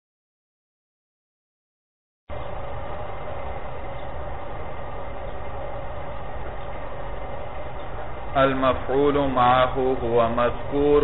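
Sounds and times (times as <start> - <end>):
low hum: 2.3 - 11.0.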